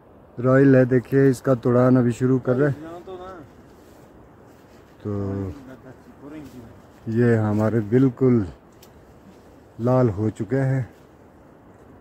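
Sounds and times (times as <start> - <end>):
outdoor background noise: 0.0 - 12.0
person's voice: 5.0 - 8.6, 9.8 - 11.0.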